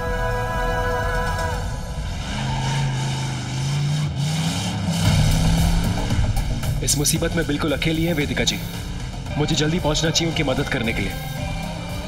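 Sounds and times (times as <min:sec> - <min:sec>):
motorcycle engine accelerating: 0:01.2 - 0:10.1.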